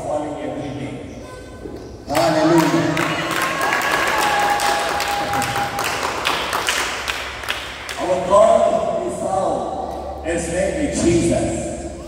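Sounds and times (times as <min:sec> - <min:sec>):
small group clapping: 0:02.1 - 0:08.2.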